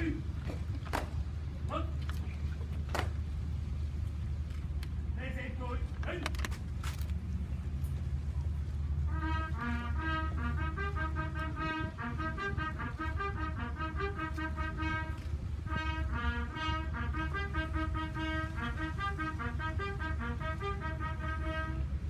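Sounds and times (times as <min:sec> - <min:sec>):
steady low rumble: 0:00.0 - 0:22.0
military brass band playing: 0:08.6 - 0:22.0.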